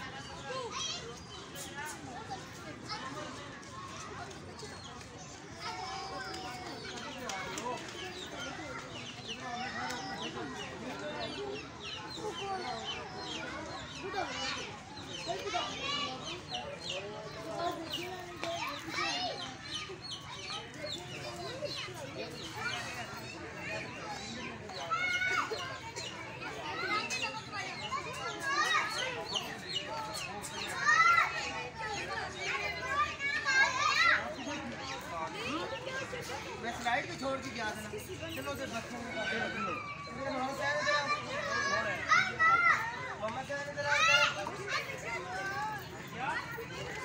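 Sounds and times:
children talking and calling out: 0.0 - 47.0
people chattering: 0.0 - 47.0.

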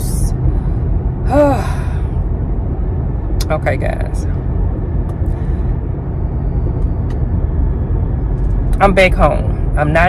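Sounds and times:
car cabin rumble: 0.0 - 10.0
woman sighing: 1.2 - 2.2.

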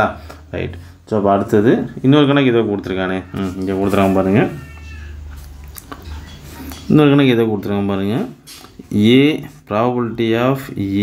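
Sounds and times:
man speaking: 0.0 - 5.2, 6.9 - 11.0.

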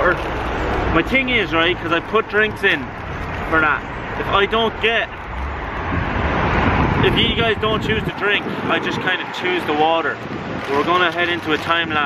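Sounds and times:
passing vehicle engine and tyres: 0.0 - 12.0.

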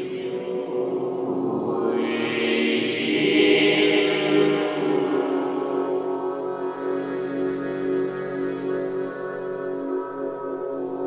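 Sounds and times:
choir-like held voices: 0.0 - 11.0.

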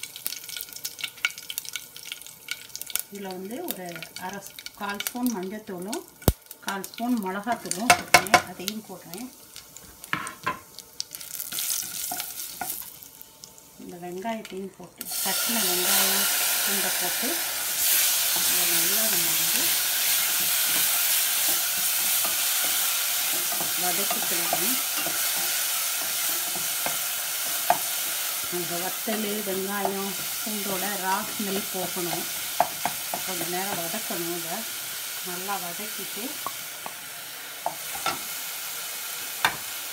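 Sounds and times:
soft sizzle: 0.0 - 39.9
spatula stirring and scraping: 17.8 - 34.0.

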